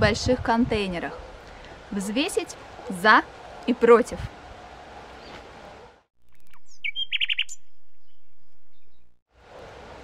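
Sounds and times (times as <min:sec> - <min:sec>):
outdoor background hiss: 0:00.0 - 0:06.1, 0:08.4 - 0:10.0
bird chirping: 0:06.2 - 0:09.2.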